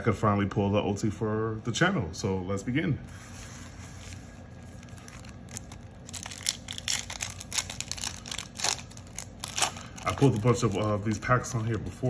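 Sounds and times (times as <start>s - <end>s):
foil pack crinkling: 4.5s - 11.8s
foil pack tearing open: 4.8s - 11.1s.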